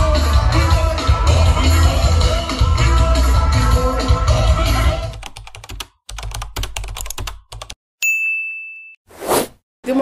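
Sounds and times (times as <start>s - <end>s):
bell ding: 8.0s - 9.0s.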